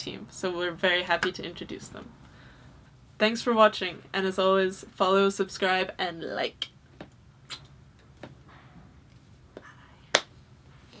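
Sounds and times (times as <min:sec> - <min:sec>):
finger snaps: 0:07.5 - 0:07.7.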